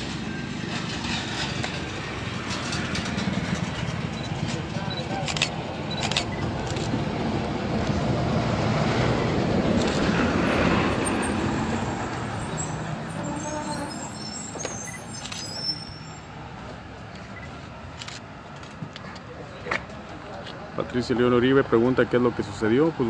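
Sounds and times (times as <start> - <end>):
vehicle passing by: 0.0 - 13.7.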